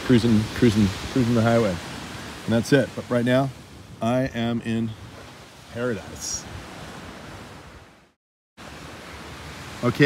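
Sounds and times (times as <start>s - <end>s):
distant surf: 0.0s - 10.0s
wind: 0.0s - 10.0s
man's voice: 2.5s - 5.0s, 5.7s - 6.4s.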